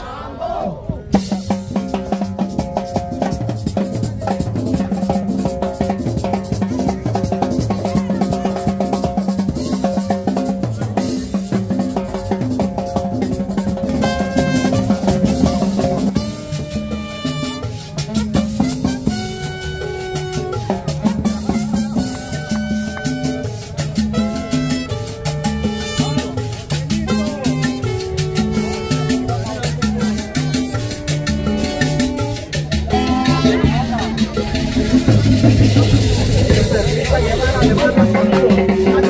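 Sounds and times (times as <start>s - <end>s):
latin dance band music: 0.0s - 39.0s
drum kit beat: 1.0s - 39.0s.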